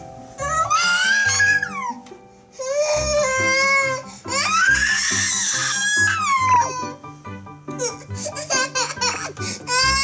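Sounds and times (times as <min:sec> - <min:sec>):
toddler crying: 0:00.4 - 0:02.0, 0:02.6 - 0:07.0, 0:07.7 - 0:10.0
music with steady beat: 0:06.2 - 0:10.0.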